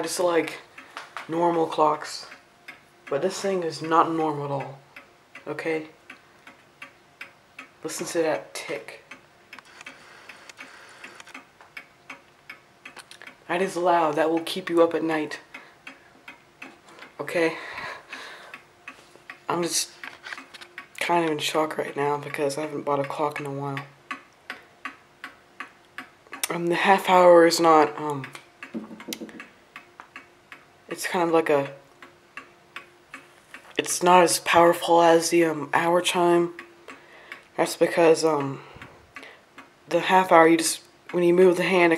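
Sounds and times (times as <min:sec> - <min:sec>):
mantel clock ticking: 0:00.0 - 0:41.9.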